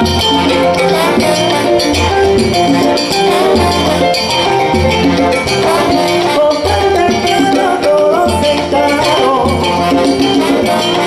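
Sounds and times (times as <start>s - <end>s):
congas timbales and shakers: 0.0s - 11.0s
salsa band playing: 0.0s - 11.0s
trombone section melody: 0.0s - 11.0s.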